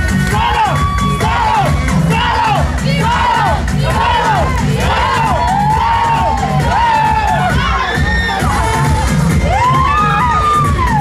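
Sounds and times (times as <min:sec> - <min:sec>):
crowd shouting and chanting: 0:00.0 - 0:11.0.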